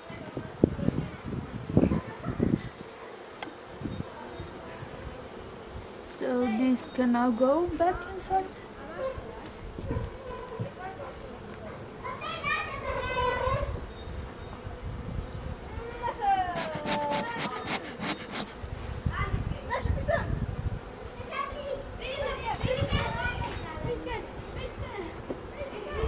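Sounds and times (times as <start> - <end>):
bees buzzing: 0.6 - 26.0
children's voices and shouts: 1.8 - 2.6, 11.8 - 13.8, 15.6 - 17.8, 21.1 - 26.0.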